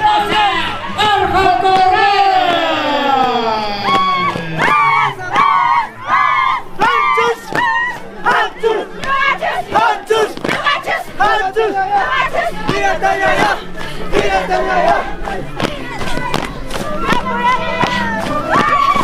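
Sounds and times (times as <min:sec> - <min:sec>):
crowd shouting: 0:00.0 - 0:19.0.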